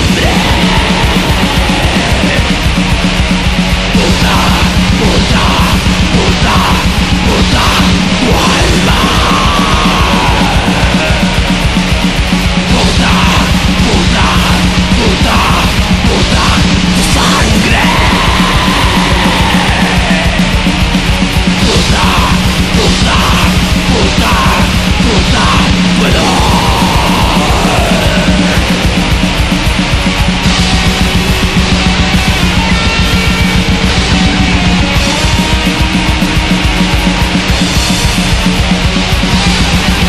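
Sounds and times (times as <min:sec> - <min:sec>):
distorted guitars: 0:00.0 - 0:40.0
fast dense drumming: 0:00.0 - 0:40.0
harsh yelled vocals: 0:00.0 - 0:40.0.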